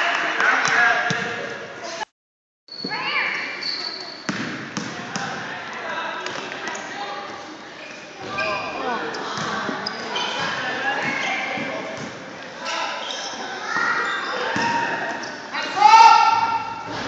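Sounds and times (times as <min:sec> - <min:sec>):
sneakers squeaking: 0:02.7 - 0:05.4, 0:06.3 - 0:15.5
basketball bouncing on wooden floor: 0:04.3 - 0:05.3
people talking and calling out: 0:04.9 - 0:17.0.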